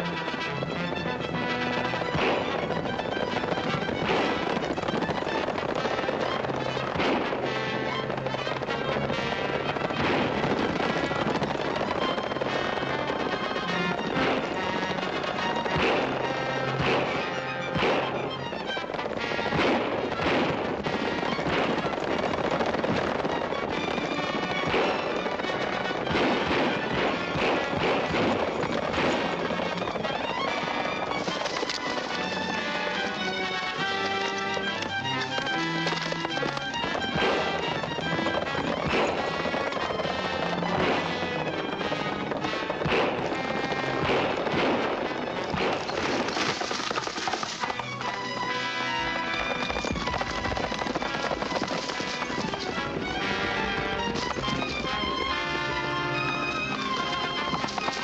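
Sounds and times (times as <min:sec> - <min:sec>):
dramatic orchestral film music: 0:00.0 - 0:58.0
gunshots: 0:00.0 - 0:58.0.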